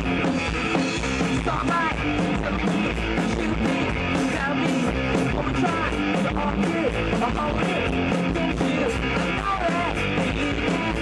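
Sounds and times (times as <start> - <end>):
live rock band: 0.0 - 11.0.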